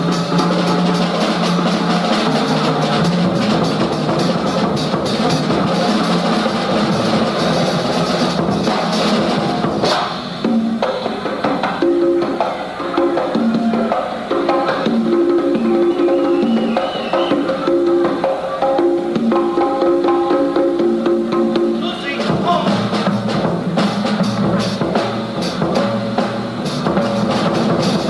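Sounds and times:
drum and conga hits: 0:00.0 - 0:28.0
jazz combo playing: 0:00.0 - 0:28.0.

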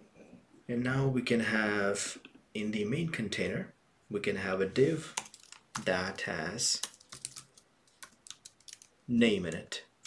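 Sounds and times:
computer keyboard typing: 0:05.2 - 0:08.9.

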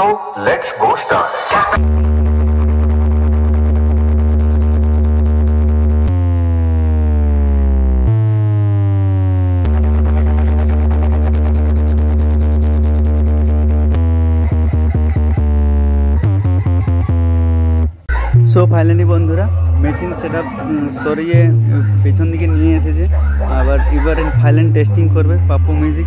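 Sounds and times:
loud electronic bass music: 0:01.8 - 0:26.0.

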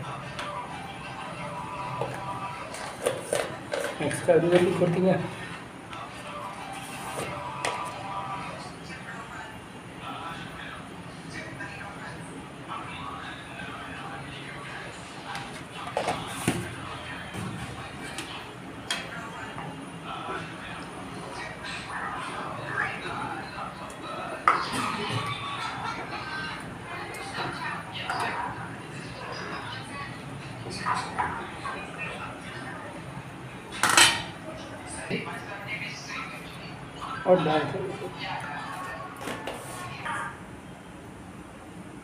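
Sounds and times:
indistinct background talk: 0:00.0 - 0:42.0.

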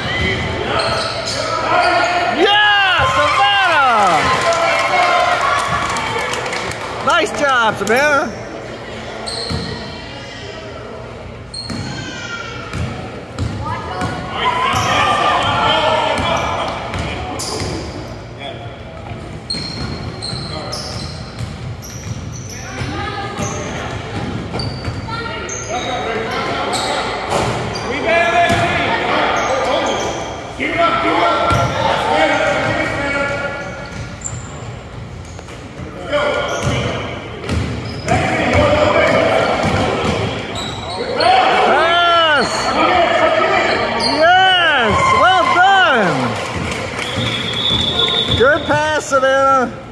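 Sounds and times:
sneakers squeaking: 0:00.0 - 0:04.3, 0:07.4 - 0:30.6, 0:31.3 - 0:49.9.

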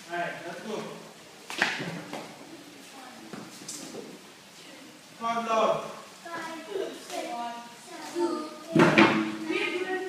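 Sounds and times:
children talking: 0:02.3 - 0:05.1, 0:06.1 - 0:10.0.

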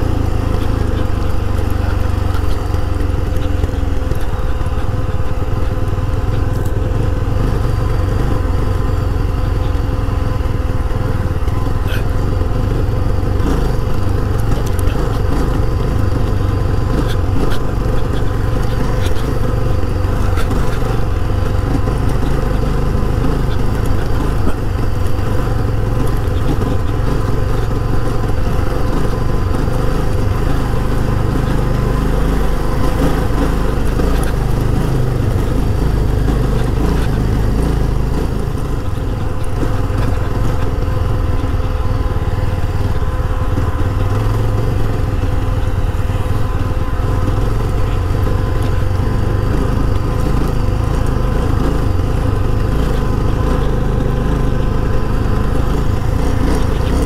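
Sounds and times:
motorcycle engine running: 0:00.0 - 0:57.0.

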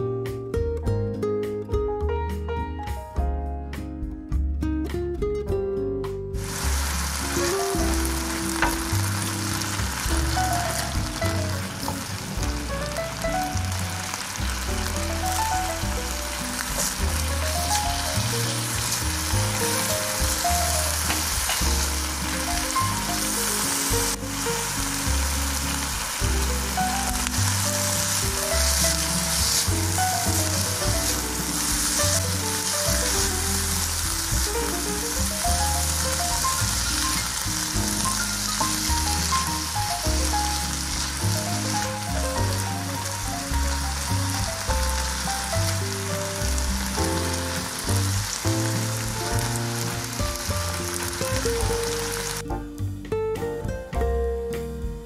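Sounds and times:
background music: 0:00.0 - 0:55.0
food sizzling in a frying pan: 0:06.4 - 0:52.4.

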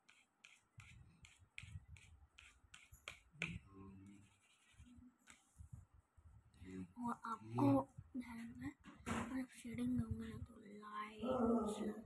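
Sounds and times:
pencil scratching on paper: 0:00.0 - 0:05.7.

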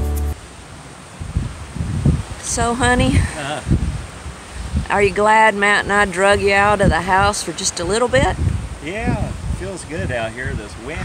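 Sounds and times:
acoustic guitar music: 0:00.0 - 0:00.4
wind buffeting microphone: 0:01.1 - 0:11.0.

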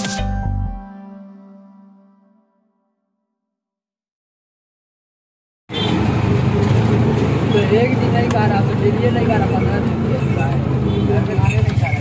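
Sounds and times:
auto-rickshaw engine running: 0:05.7 - 0:12.0
street traffic: 0:05.7 - 0:12.0.

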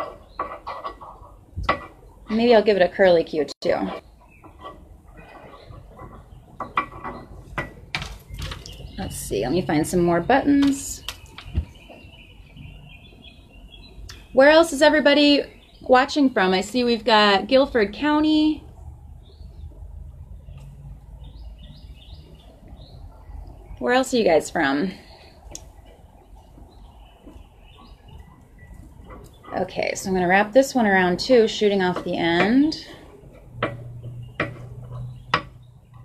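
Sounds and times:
bird chirping: 0:00.0 - 0:02.9, 0:03.7 - 0:36.0
low outdoor rumble: 0:00.0 - 0:36.0.

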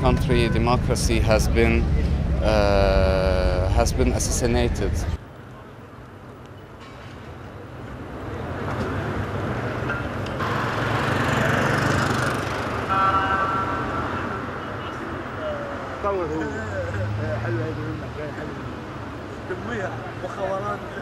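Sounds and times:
city street traffic: 0:00.0 - 0:21.0
vehicle passing: 0:08.0 - 0:20.8.

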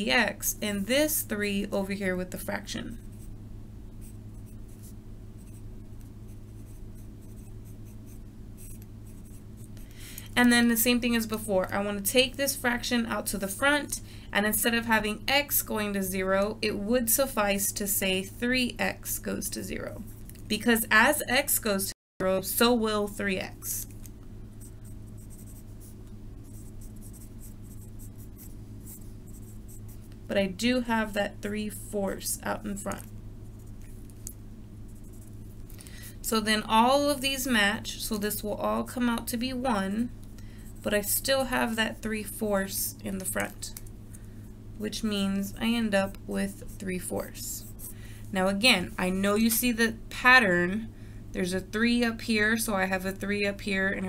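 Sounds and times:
steady low hum: 0:00.0 - 0:54.0
pen scratching on paper: 0:06.3 - 0:09.8, 0:24.6 - 0:30.0.

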